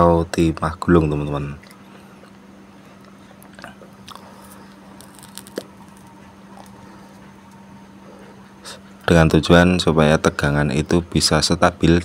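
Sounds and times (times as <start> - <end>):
steady low hum: 0.0 - 12.0
small clicks and crackles: 3.0 - 6.8.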